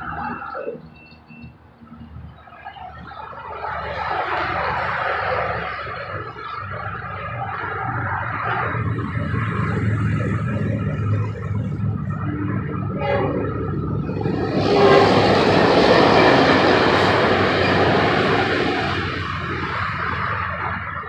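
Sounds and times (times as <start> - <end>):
train rushing past: 7.8 - 21.0.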